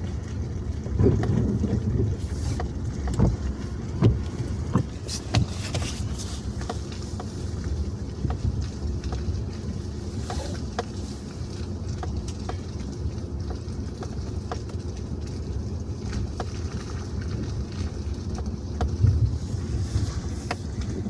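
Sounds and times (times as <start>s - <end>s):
engine and road rumble: 0.0s - 21.0s.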